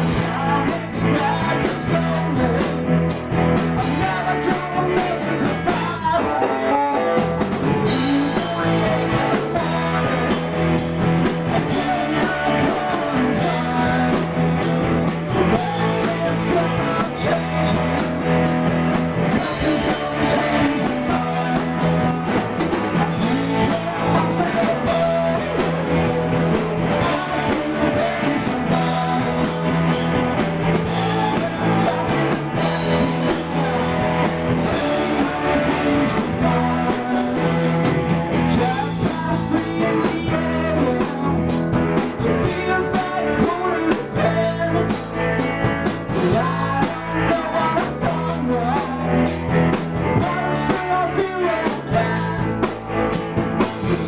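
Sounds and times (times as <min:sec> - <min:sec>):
drum kit beat: 0:00.0 - 0:54.0
electric guitars: 0:00.0 - 0:54.0
man singing lead vocal: 0:00.0 - 0:54.0.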